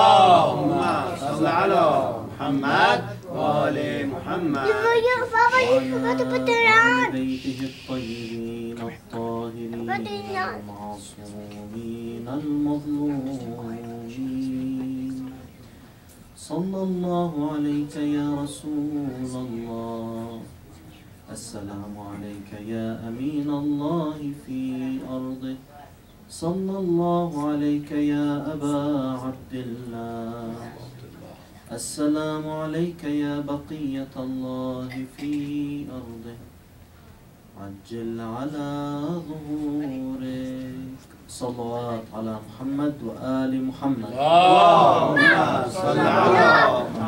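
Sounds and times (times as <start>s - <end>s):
man chanting: 0.0s - 15.2s.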